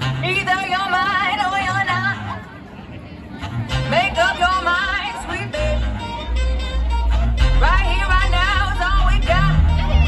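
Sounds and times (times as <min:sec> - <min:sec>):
music with low bass: 0:00.0 - 0:00.6, 0:03.4 - 0:10.0.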